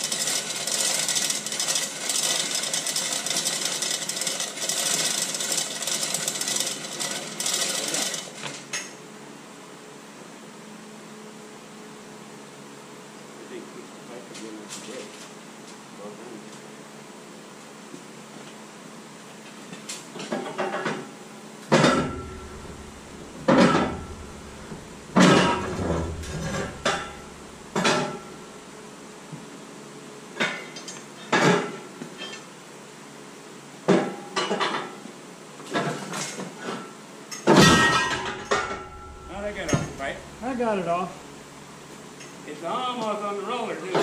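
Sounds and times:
steady background noise: 0:08.3 - 0:34.6, 0:37.0 - 0:42.9
metal clanks and bangs: 0:21.7 - 0:28.7, 0:37.5 - 0:41.5.

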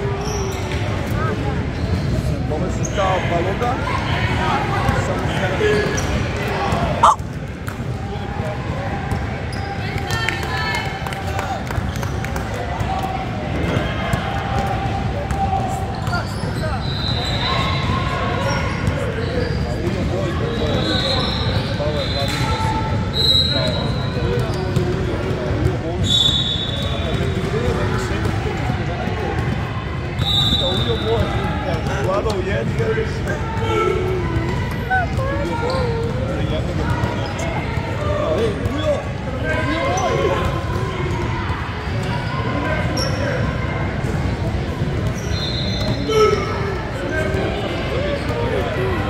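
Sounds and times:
sneakers squeaking: 0:00.1 - 0:03.1, 0:05.6 - 0:07.4, 0:09.5 - 0:09.9, 0:15.7 - 0:28.3, 0:30.2 - 0:49.0
indistinct voices: 0:07.0 - 0:07.2.

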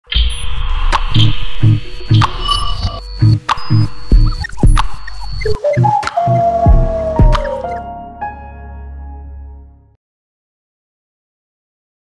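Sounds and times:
electronic music jingle: 0:00.1 - 0:09.7.

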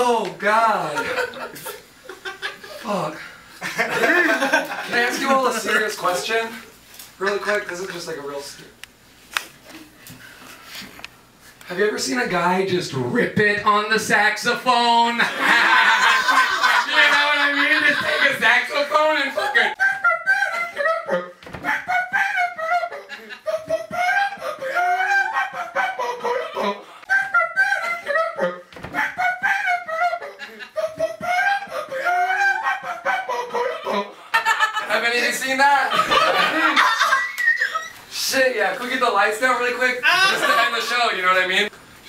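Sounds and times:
audience laughter: 0:15.2 - 0:21.2, 0:35.9 - 0:37.9.

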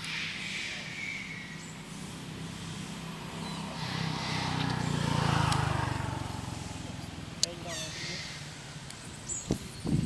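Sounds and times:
vehicle engine passing by: 0:00.2 - 0:09.4.

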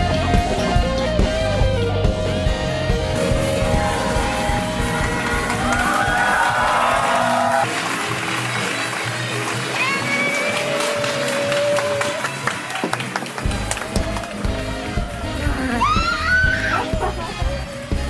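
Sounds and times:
saxophone quartet with drums: 0:00.0 - 0:06.1, 0:13.4 - 0:18.0.

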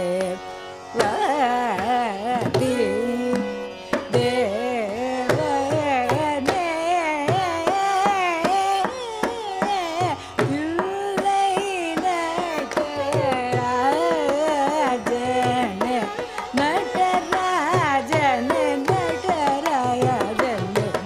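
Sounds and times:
woman singing: 0:00.0 - 0:21.0.

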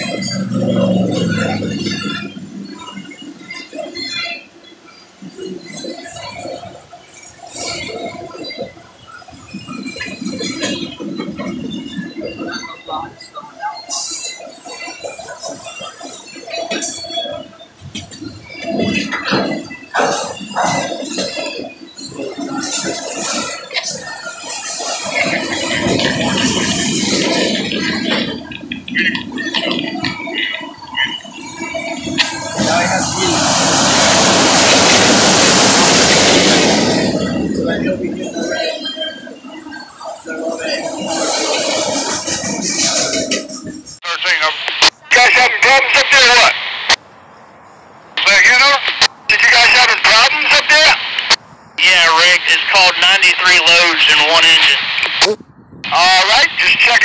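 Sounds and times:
freight train rolling by: 0:00.0 - 0:57.0
two-way radio chatter: 0:32.1 - 0:33.5, 0:44.0 - 0:47.0, 0:48.2 - 0:57.0.

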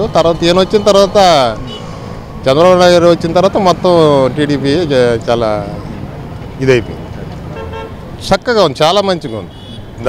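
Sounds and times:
man talking: 0:00.0 - 0:01.8, 0:02.4 - 0:05.9, 0:06.5 - 0:07.4, 0:08.2 - 0:09.6
roadside traffic: 0:00.0 - 0:10.0
vehicle horn toot: 0:07.6 - 0:08.0, 0:09.2 - 0:09.9.

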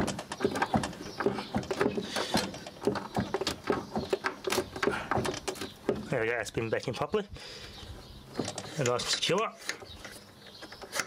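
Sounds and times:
plastic and metal parts clicking: 0:08.4 - 0:11.0.

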